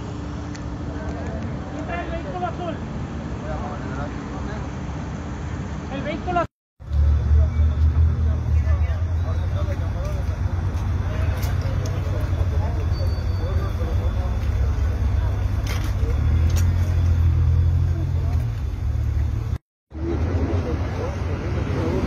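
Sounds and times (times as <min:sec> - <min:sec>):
car engines rumbling: 0:00.0 - 0:22.0
bystanders talking: 0:00.8 - 0:05.0, 0:05.8 - 0:22.0.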